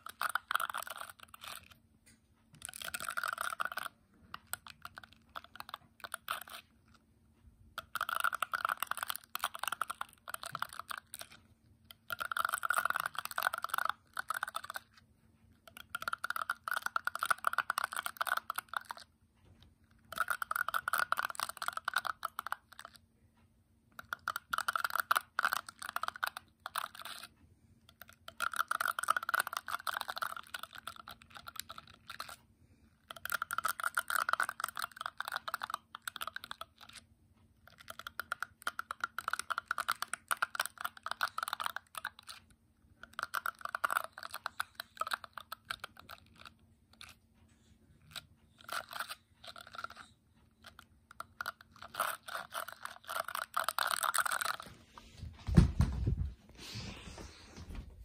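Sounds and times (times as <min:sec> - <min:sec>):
fingers scratching hairbrush bristles: 0:02.5 - 0:07.0, 0:24.0 - 0:27.3, 0:48.0 - 0:55.0.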